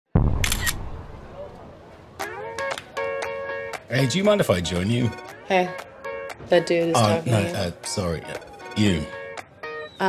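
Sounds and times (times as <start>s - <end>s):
deep boom: 0.1s - 1.3s.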